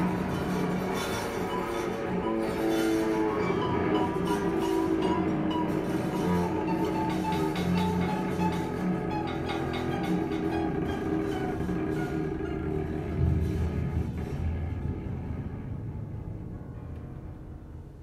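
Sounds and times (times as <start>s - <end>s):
violin: 0.0s - 15.9s
cello: 0.0s - 18.0s.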